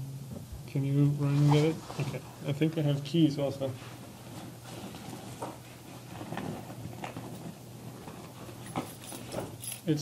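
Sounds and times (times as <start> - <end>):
steady low hum: 0.0 - 10.0
faint knocks and shuffles: 1.2 - 10.0.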